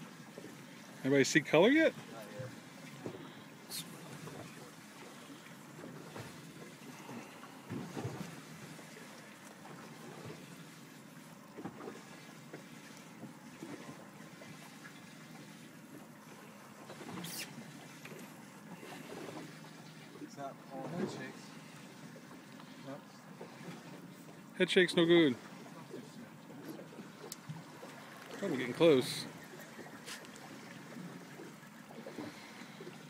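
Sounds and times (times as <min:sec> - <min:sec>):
water noise: 0:00.0 - 0:33.0
wind: 0:00.0 - 0:33.0.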